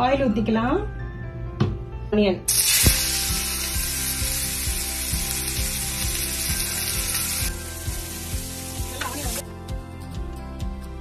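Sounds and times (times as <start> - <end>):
background music with steady beat: 0.0 - 11.0
onions sizzling in hot oil: 2.5 - 9.4.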